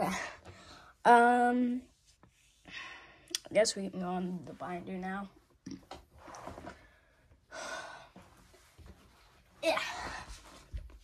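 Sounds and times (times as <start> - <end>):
person breathing: 2.6 - 3.3, 6.9 - 8.3.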